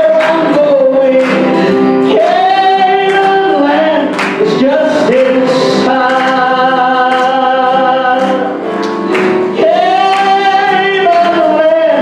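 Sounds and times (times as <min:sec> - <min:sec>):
guitar: 0:00.0 - 0:12.0
keyboard: 0:00.0 - 0:12.0
men singing gospel: 0:00.0 - 0:12.0.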